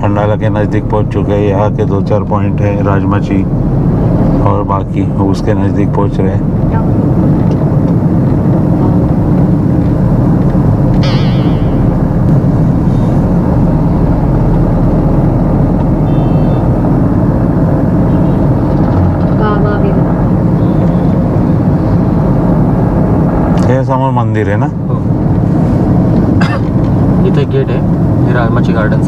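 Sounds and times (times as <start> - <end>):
car cabin road noise: 0.0 - 29.0
warbling high tone: 11.0 - 12.2.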